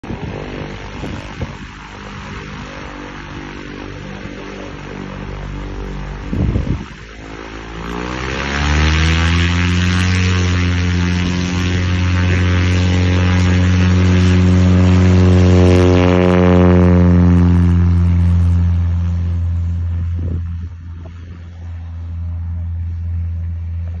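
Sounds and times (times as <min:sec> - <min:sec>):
light airplane engine droning: 0:00.0 - 0:24.0.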